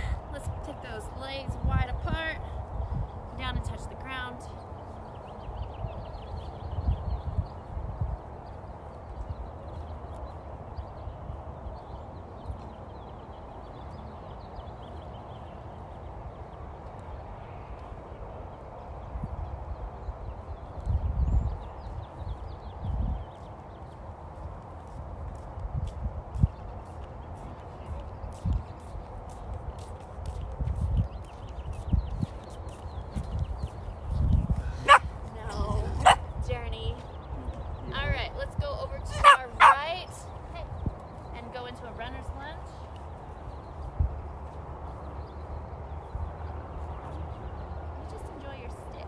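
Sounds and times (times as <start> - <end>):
dog barking and yipping: 34.8 - 35.1, 36.0 - 36.3, 39.2 - 39.8.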